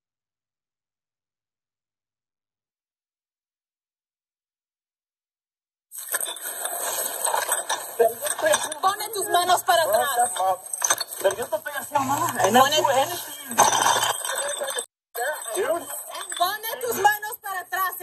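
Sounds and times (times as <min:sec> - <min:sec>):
gear clinking and rustling: 0:06.0 - 0:17.2
low recording hum: 0:06.5 - 0:17.2
voices of people scuffling: 0:07.8 - 0:17.9.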